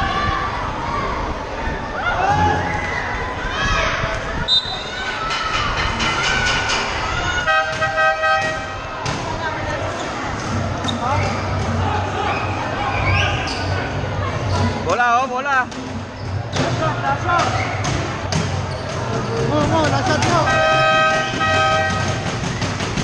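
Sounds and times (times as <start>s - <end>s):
crowd chatter: 0.0s - 23.0s
short horn blast: 20.4s - 22.3s.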